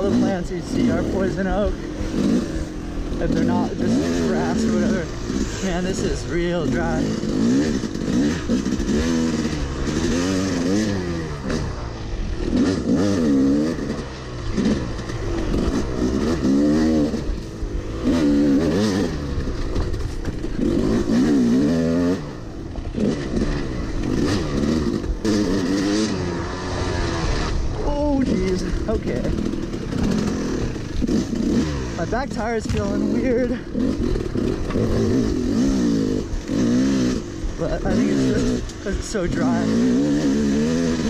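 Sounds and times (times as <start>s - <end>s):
dirt bike engine revving: 0.0s - 41.0s.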